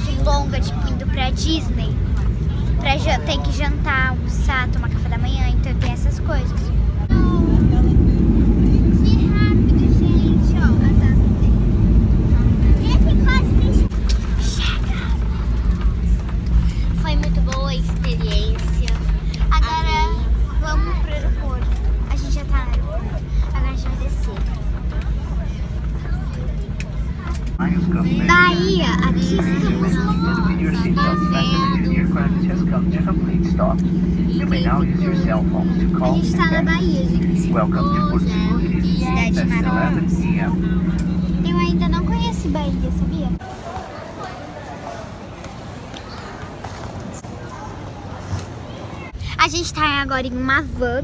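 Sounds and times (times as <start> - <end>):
airliner cabin rumble: 0.0 - 43.4
jet engine hum: 0.0 - 44.0.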